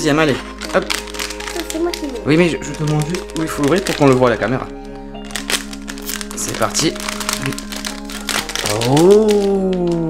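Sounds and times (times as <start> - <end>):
background music: 0.0 - 10.0
foil packet crinkling: 0.0 - 10.0.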